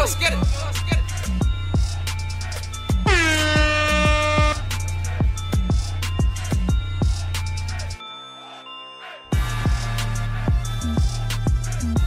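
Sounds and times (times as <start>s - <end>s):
hip-hop beat with kick drums: 0.0s - 8.0s, 9.3s - 12.0s
air horn sound effect: 3.0s - 4.8s.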